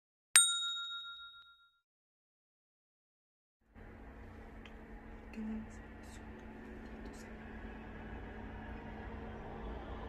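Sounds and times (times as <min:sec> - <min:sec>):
bell-like ding: 0:00.4 - 0:01.8.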